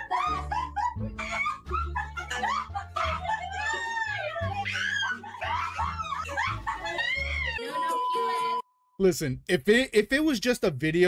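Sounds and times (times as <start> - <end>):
young women squealing laughter: 0.0 - 8.6.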